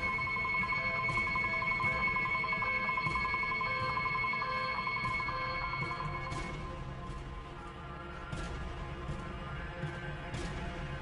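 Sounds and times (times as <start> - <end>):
high-pitched warbling alarm: 0.0 - 6.4.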